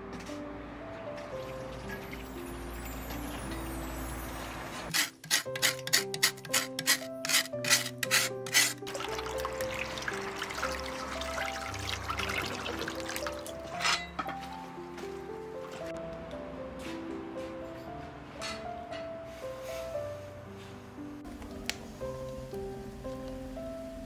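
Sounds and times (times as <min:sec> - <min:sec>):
background music: 0:00.0 - 0:24.0
scrubbing meat in a metal basin: 0:05.0 - 0:13.9
tap water splashing: 0:08.9 - 0:13.6.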